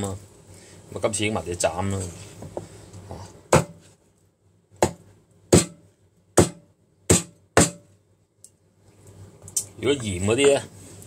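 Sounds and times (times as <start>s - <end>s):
cleaver chopping through chicken: 4.8s - 5.8s.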